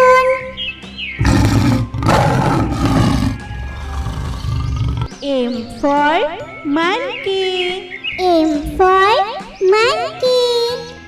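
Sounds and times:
light background music: 0.0s - 11.0s
lion roaring: 1.2s - 5.1s.

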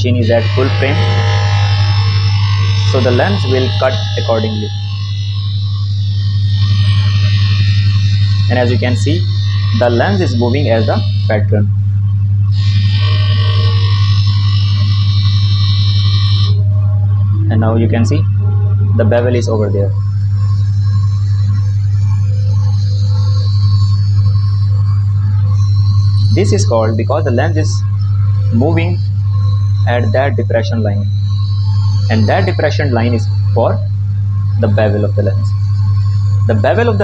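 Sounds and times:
lens edger grinding hum: 0.0s - 11.6s
lens edger motor humming and whining: 0.0s - 37.0s.

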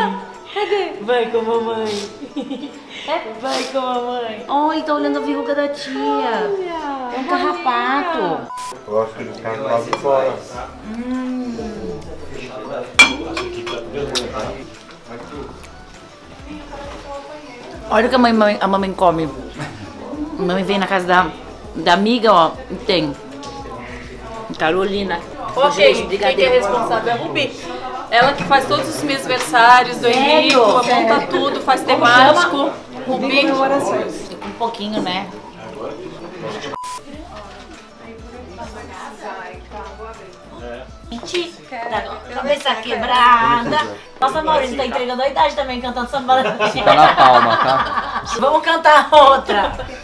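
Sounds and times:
electronic beep: 8.5s - 8.8s, 36.7s - 37.1s
dome cover clinking on dish: 13.0s - 14.3s.

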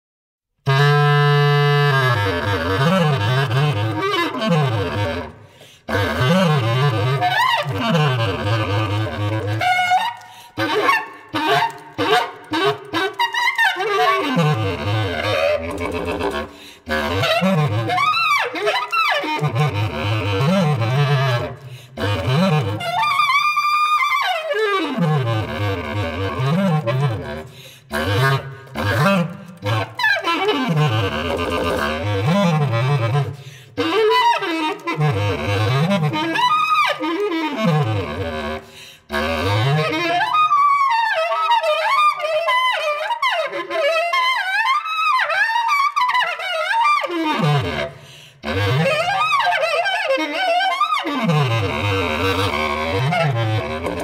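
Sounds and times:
bass clarinet improvising: 0.6s - 54.0s.

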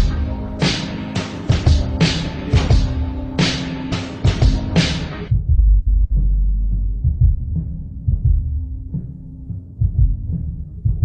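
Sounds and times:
deep bass drum hits: 4.3s - 9.0s.

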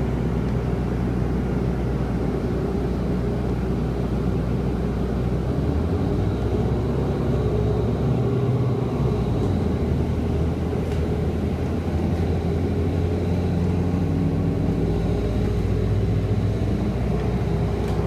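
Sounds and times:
bus diesel engine droning: 0.0s - 18.0s.

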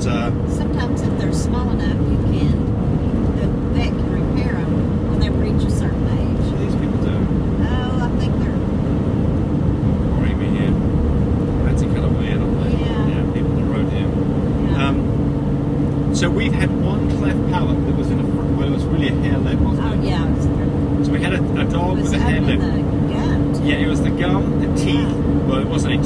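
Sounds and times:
road and engine noise in cab: 0.0s - 26.0s
people talking quietly: 10.2s - 10.8s, 11.6s - 15.0s, 16.1s - 26.0s.

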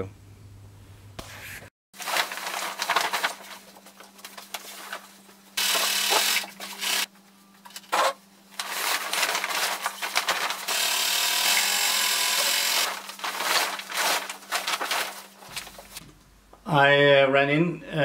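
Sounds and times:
sailcloth rustling: 13.0s - 16.1s.

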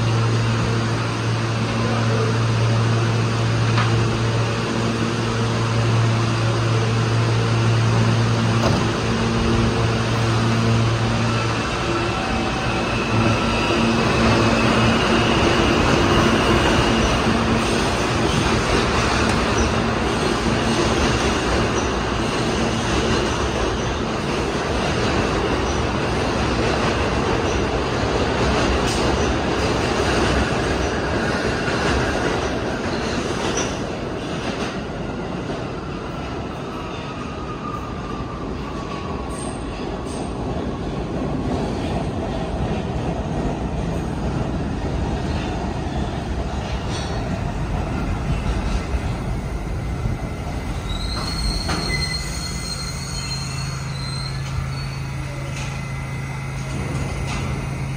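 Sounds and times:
train wheels rumbling: 0.0s - 57.9s
train electrical hum: 43.8s - 57.9s
train motor whine: 49.2s - 57.9s
wheel squeal: 50.8s - 57.6s.

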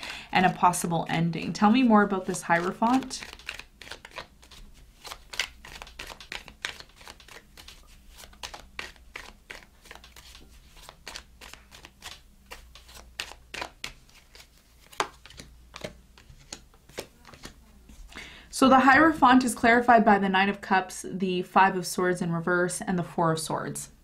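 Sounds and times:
cards being shuffled: 1.7s - 18.1s.

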